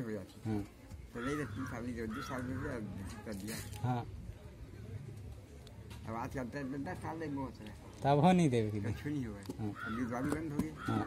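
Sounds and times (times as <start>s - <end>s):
man speaking: 0.0s - 4.2s, 6.0s - 11.0s.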